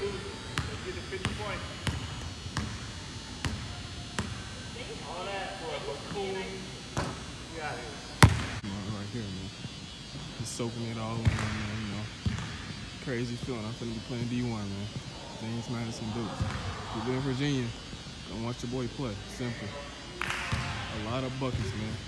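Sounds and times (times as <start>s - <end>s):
basketball bouncing on hardwood: 0.6s - 2.8s, 8.2s - 8.6s, 12.2s - 12.8s.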